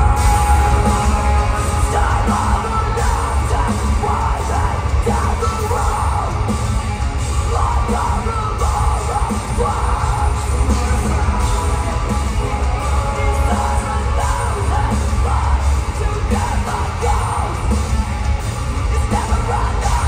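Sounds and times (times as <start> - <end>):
distorted guitars: 0.0 - 20.0
drums: 0.0 - 20.0
heavy bass: 0.0 - 20.0
vocalist singing: 0.0 - 20.0.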